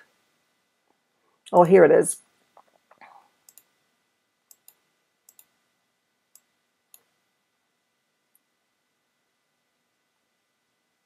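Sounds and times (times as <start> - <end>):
computer mouse clicks: 3.4 - 3.7, 4.5 - 5.6.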